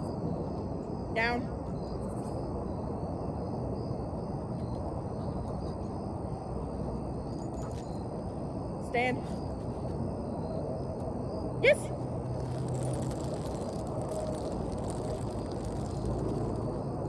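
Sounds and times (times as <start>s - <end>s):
insects droning: 0.0s - 17.0s.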